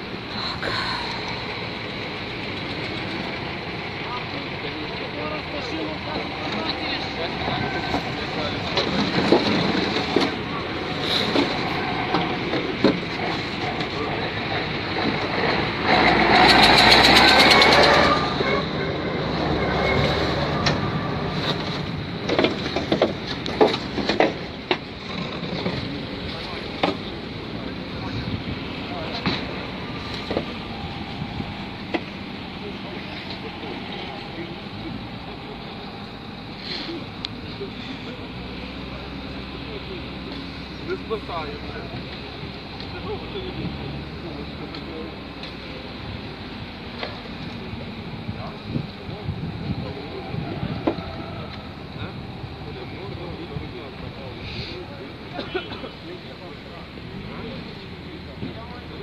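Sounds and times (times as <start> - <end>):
background voices: 0.0 - 59.0
heavy vehicle engine: 0.0 - 59.0
machinery engines running: 0.0 - 59.0.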